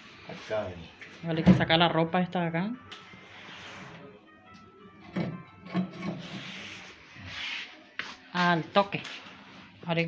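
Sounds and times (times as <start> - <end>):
objects rubbing and rustling: 3.0 - 4.2, 5.1 - 10.0.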